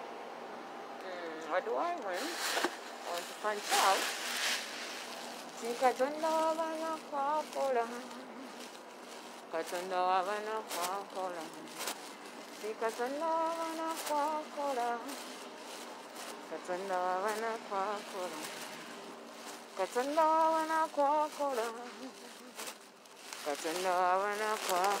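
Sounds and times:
person singing gospel with vibrato: 1.0 - 25.0.

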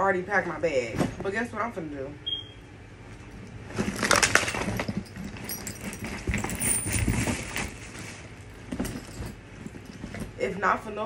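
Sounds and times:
travel bag rustling and knocking: 3.7 - 10.4.

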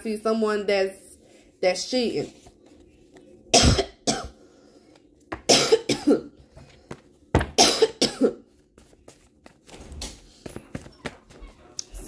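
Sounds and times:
person coughing: 3.5 - 4.4, 5.4 - 6.4, 7.6 - 8.4.

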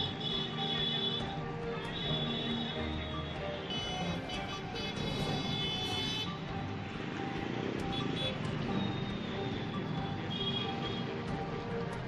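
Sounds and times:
small engines of passing traffic: 0.0 - 12.0.

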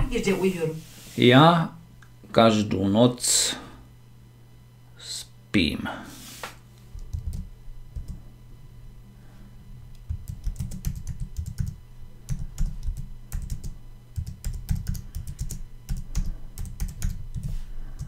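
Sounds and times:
typing on computer keyboard: 7.0 - 8.2, 10.0 - 17.5.

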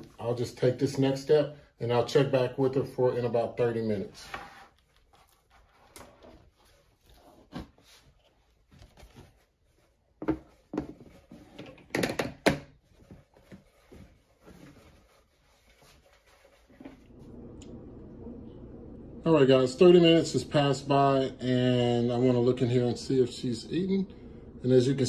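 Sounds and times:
steady low hum: 16.8 - 25.0.

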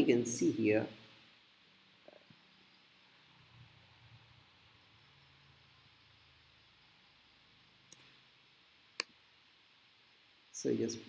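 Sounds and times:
faint small ticks: 7.9 - 8.2.

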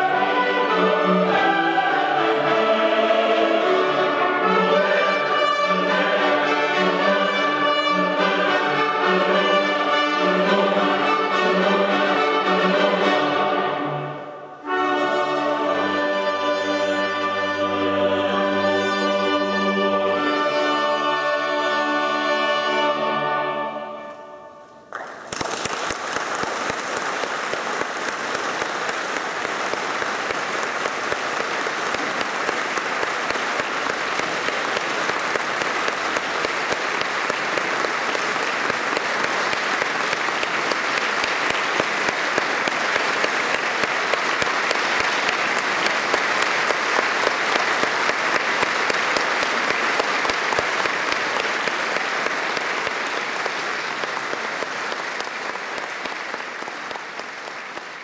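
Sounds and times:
audience applauding: 24.9 - 58.0.

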